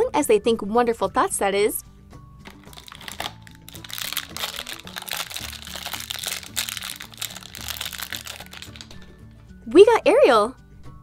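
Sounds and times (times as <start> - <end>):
background music: 0.0 - 11.0
plastic wrapper crinkling: 2.4 - 9.1.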